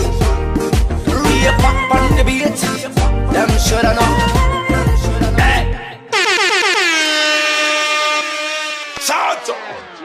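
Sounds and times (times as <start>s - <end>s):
song beat: 0.0s - 6.9s
air horn sound effect: 6.1s - 9.4s.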